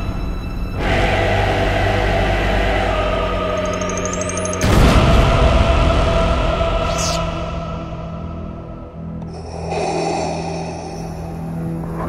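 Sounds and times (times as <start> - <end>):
low cinematic drone: 0.0 - 12.0
raspy breath-like rush: 9.3 - 11.7.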